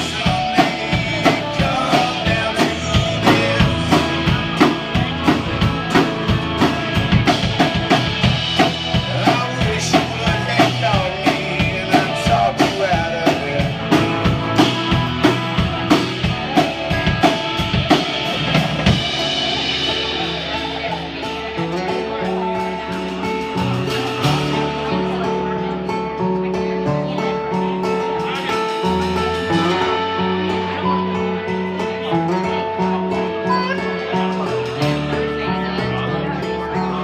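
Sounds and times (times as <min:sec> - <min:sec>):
drum kit beat: 0:00.0 - 0:36.0
acoustic guitars: 0:00.0 - 0:37.0
bass guitar: 0:00.0 - 0:37.0.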